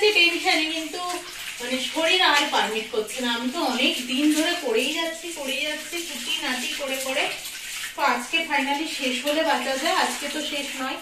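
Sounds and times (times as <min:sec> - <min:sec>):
woman talking: 0:00.0 - 0:07.4, 0:08.0 - 0:11.0
dishes being washed: 0:00.0 - 0:11.0
tap running into a sink: 0:00.0 - 0:11.0.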